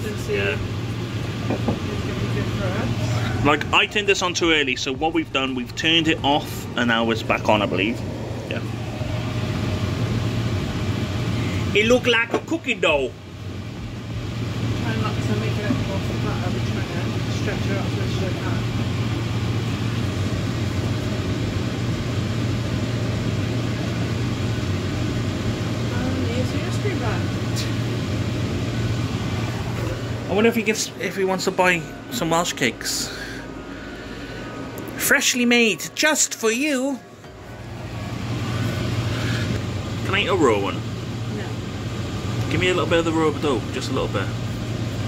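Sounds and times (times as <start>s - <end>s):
steady low hum: 0.0s - 45.0s
even rushing noise: 2.8s - 11.4s.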